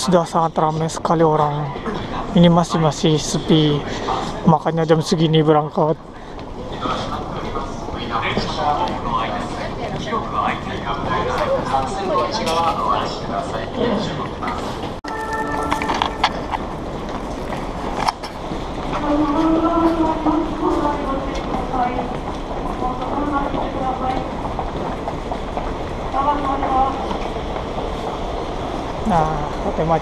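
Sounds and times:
train at platform: 0:00.0 - 0:30.0
short electronic chime: 0:15.0 - 0:16.5.

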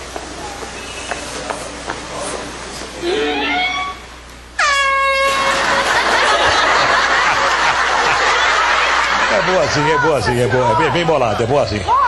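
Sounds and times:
air horn blast: 0:03.0 - 0:05.8.

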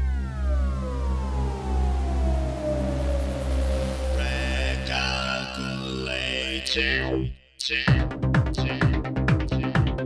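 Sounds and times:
deep pulsing bass: 0:00.0 - 0:10.0
synthesizer tone sweeping down: 0:00.0 - 0:10.0.

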